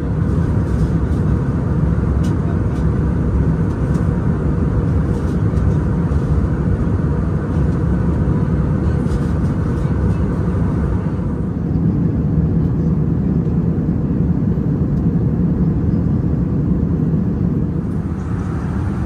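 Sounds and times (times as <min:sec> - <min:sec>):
airliner cabin engine noise: 0:00.0 - 0:19.0.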